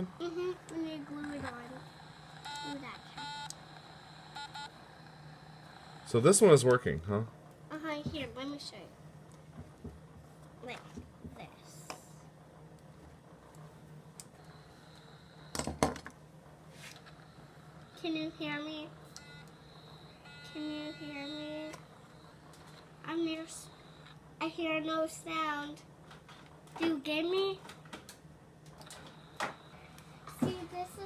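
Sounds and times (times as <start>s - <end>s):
thin high tone: 0.0s - 6.8s, 17.0s - 24.2s
faint steady hum: 0.0s - 31.0s
objects knocking on wooden workbench: 9.5s - 10.3s, 15.6s - 16.1s.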